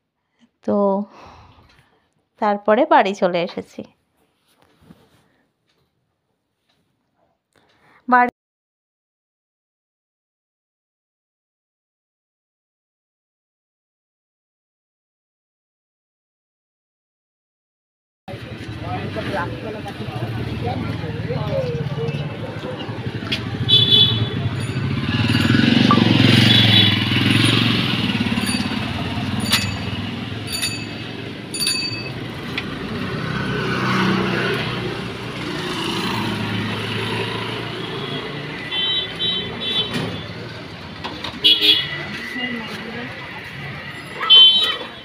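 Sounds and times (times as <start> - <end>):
traffic rumble: 18.3 - 45.0
short horn toots: 23.6 - 24.5, 25.9 - 27.1.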